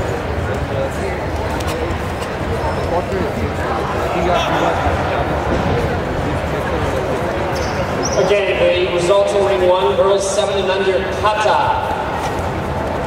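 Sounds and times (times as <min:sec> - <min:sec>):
sports hall hubbub: 0:00.0 - 0:13.0.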